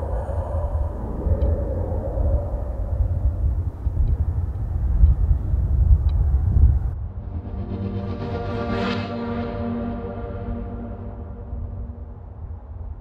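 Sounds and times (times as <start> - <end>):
gusty wind: 0.0 - 13.0.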